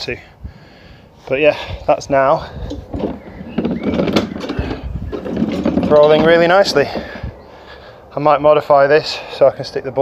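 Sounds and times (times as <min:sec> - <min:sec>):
cart rolling over grass: 0:02.6 - 0:07.3
sharp knocks from cart: 0:02.9 - 0:07.1.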